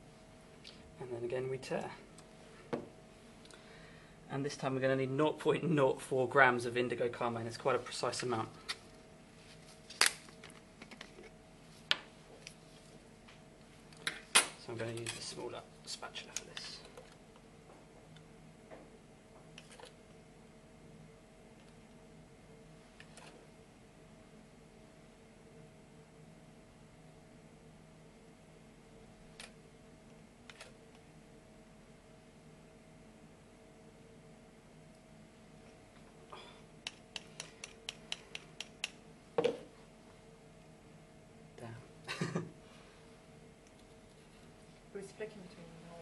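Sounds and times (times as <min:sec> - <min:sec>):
faint steady hum: 0:00.0 - 0:46.0.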